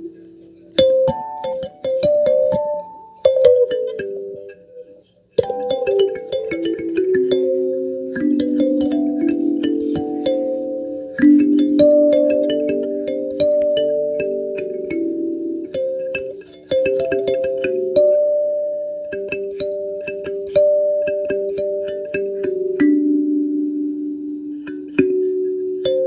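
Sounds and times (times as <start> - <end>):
kalimba being plucked: 0.0 - 26.0.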